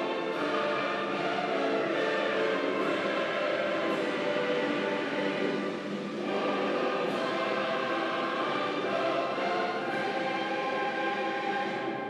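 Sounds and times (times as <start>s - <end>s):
choir singing with accompaniment: 0.0s - 12.0s.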